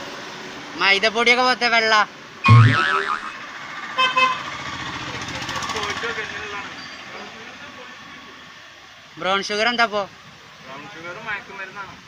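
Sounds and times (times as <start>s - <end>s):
street traffic din: 0.0s - 12.0s.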